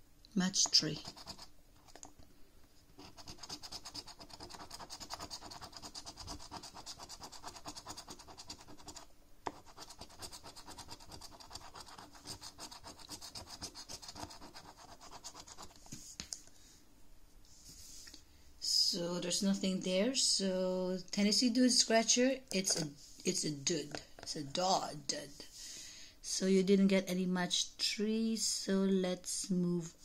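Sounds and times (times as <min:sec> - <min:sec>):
coin scratching lottery card: 0:00.9 - 0:01.4, 0:03.0 - 0:15.7.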